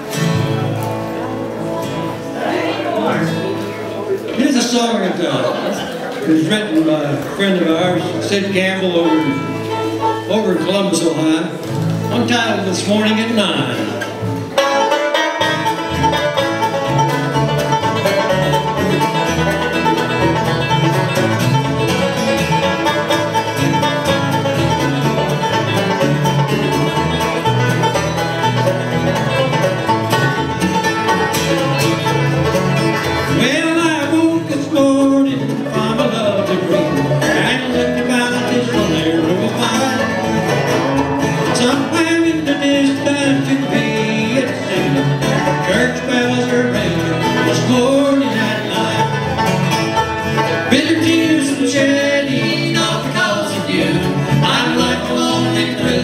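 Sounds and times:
bluegrass band playing: 0:00.0 - 0:56.0.

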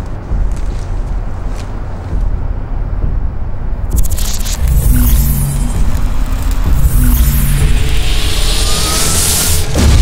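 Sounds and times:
steady low hum: 0:00.0 - 0:10.0
deep magic rumble: 0:02.4 - 0:10.0.

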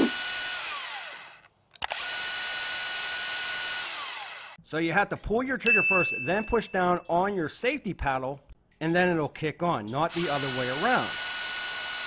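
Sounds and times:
band saw motor whine: 0:00.0 - 0:04.6.

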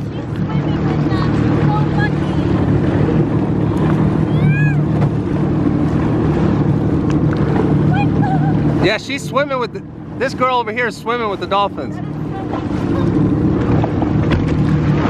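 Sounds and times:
jet ski engine idling: 0:00.0 - 0:15.0.

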